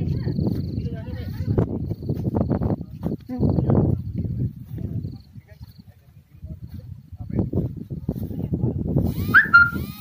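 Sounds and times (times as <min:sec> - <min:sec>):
short high-pitched call: 0:09.1 - 0:10.0.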